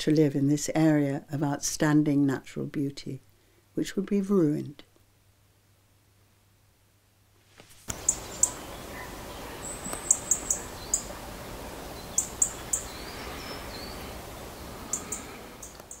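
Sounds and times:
outdoor background hiss: 0.0s - 16.0s
small birds chirping: 7.9s - 16.0s.

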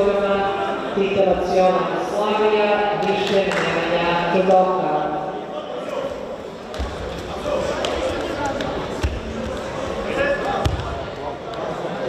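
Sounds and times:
murmur of voices echoing: 0.0s - 12.0s.

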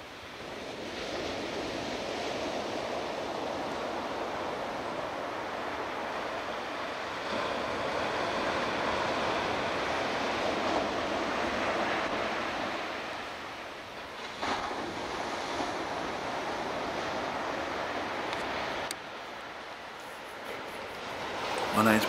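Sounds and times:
ocean surf breaking: 0.0s - 22.0s.

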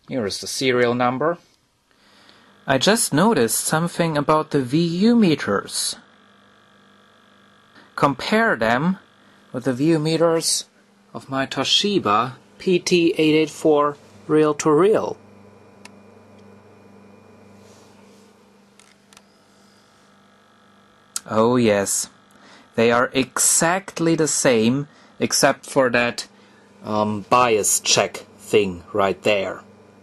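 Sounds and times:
faint mains hum with hiss: 0.0s - 30.0s.

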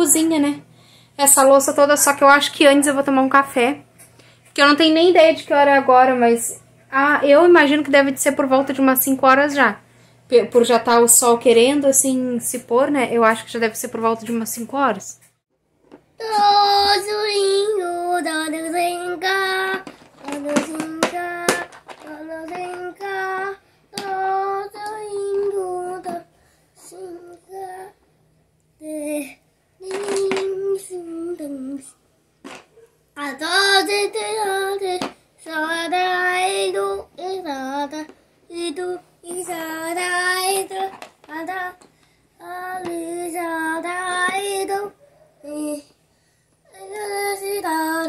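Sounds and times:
young boy singing: 16.2s - 28.0s, 28.8s - 31.9s, 33.2s - 45.9s, 46.7s - 48.0s.

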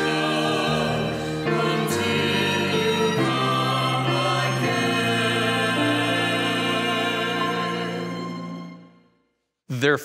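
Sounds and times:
choir singing sustained chords: 0.0s - 9.1s.

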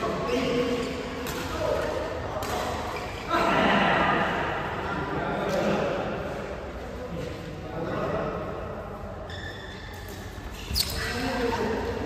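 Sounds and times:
racket hitting shuttlecock: 0.8s - 2.9s.

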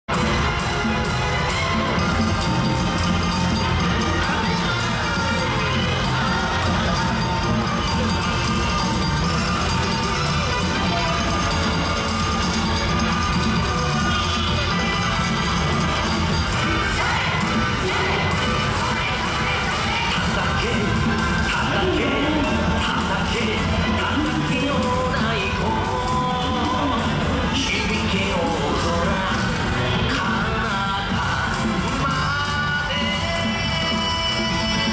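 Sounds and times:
dance music over loudspeakers: 0.0s - 34.9s
crowd cheering: 0.1s - 24.7s
dancers shouting: 0.1s - 30.6s.

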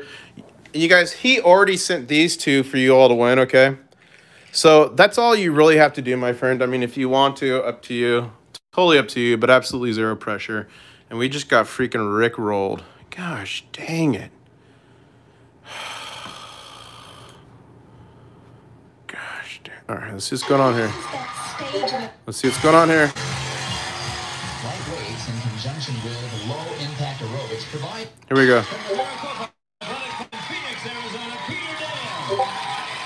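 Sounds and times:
person breathing out: 14.7s - 17.4s
sports broadcast voices through speakers: 20.0s - 32.6s.

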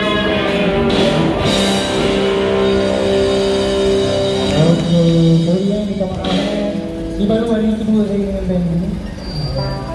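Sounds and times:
distorted electric guitars: 0.0s - 9.9s.

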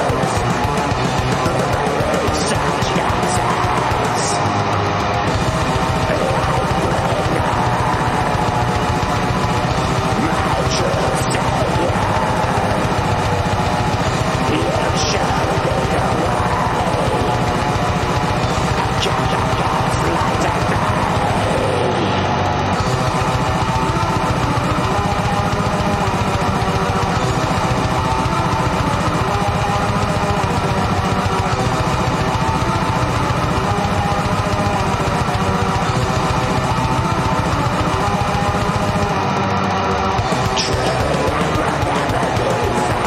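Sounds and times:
extreme metal song with guitars: 0.0s - 43.0s.

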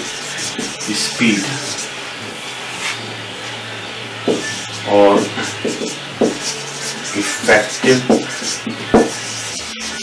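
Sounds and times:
marker scraping on whiteboard: 0.0s - 3.6s, 4.2s - 10.0s.

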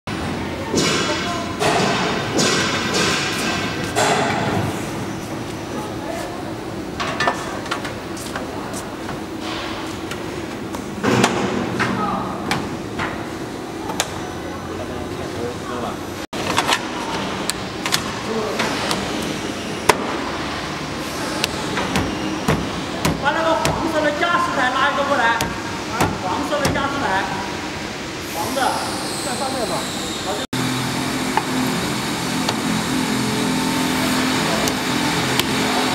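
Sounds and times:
metal trim knocks and thumps: 25.4s - 27.0s.

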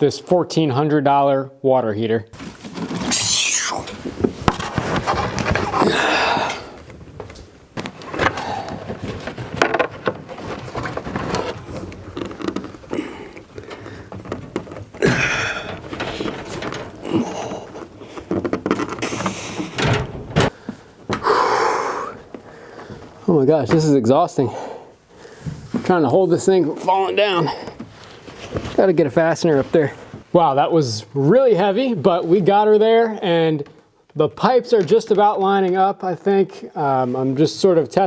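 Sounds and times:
man grunting and breathing hard: 5.8s - 6.8s, 15.0s - 15.8s, 21.2s - 22.2s.

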